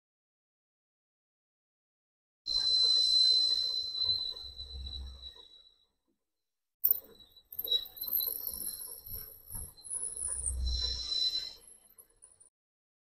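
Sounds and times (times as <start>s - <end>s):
high-pitched squeal of boring tool: 2.5s - 5.7s, 6.9s - 12.2s.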